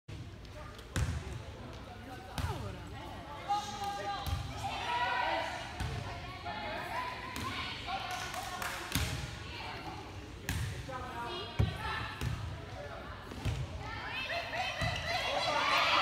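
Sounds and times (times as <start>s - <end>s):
people shouting and calling: 13.9s - 16.0s.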